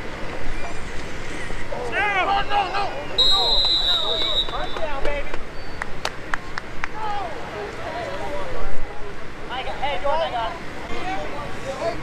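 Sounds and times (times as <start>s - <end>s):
referee's whistle: 3.1s - 5.0s.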